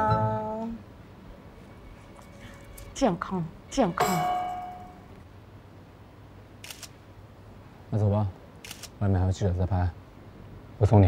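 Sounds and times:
bright ringing clink: 0:03.9 - 0:05.1.

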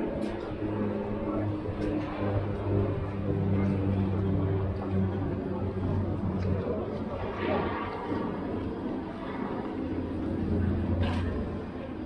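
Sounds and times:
indistinct voices of passers-by: 0:00.0 - 0:12.0
traffic engine hum: 0:00.0 - 0:12.0.

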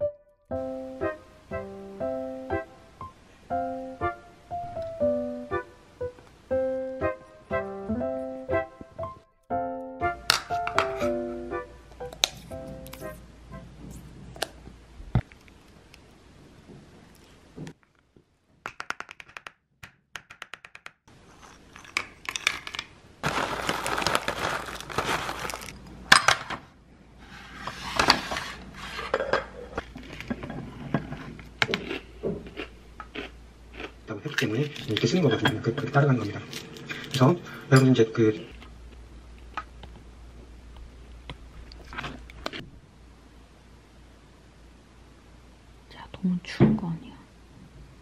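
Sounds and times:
steady low hum: 0:11.1 - 0:17.8.

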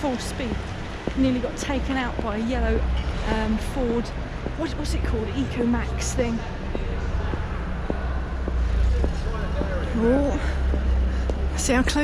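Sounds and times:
faint voices: 0:00.0 - 0:12.0
low rumble of large hall: 0:00.0 - 0:12.0.

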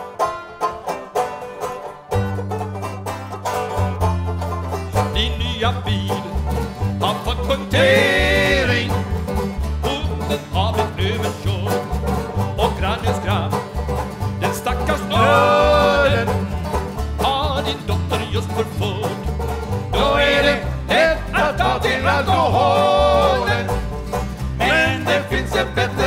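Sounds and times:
acoustic guitars strumming: 0:00.0 - 0:26.0
banjo plucking: 0:00.0 - 0:26.0
walking bass line: 0:00.2 - 0:26.0
voices singing held notes: 0:07.3 - 0:09.0, 0:14.4 - 0:16.5, 0:19.9 - 0:23.8, 0:24.6 - 0:26.0.

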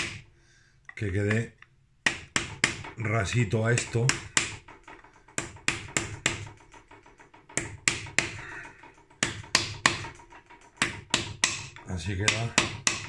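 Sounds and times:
hammer tapping on wooden drift: 0:01.2 - 0:13.0.

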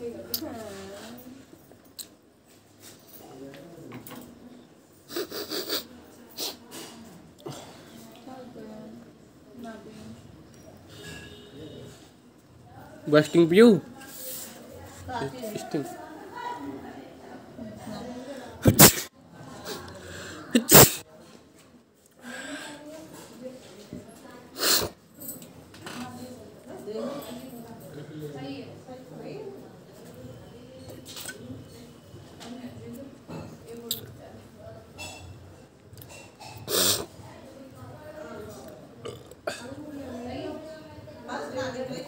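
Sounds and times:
faint murmuring voices: 0:00.0 - 0:13.1, 0:13.9 - 0:42.0
person sneezing: 0:18.6 - 0:19.1, 0:20.5 - 0:21.0.

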